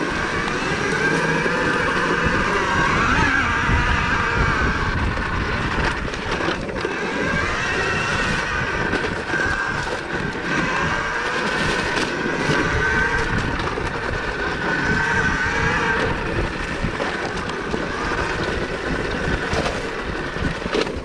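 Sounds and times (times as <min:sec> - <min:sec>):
electric motor whine: 0:00.0 - 0:21.0
trail rumble: 0:00.0 - 0:21.0
wind: 0:00.0 - 0:21.0.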